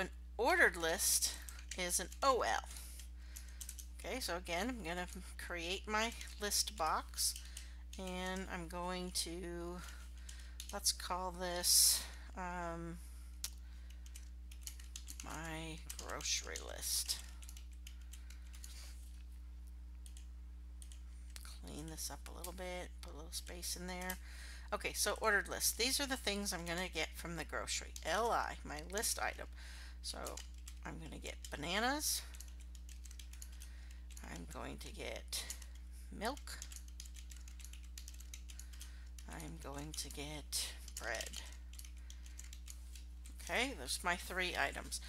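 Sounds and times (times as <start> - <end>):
steady low hum: 0.0 - 45.0
keyboard typing: 1.0 - 5.2, 13.4 - 19.2, 30.1 - 45.0.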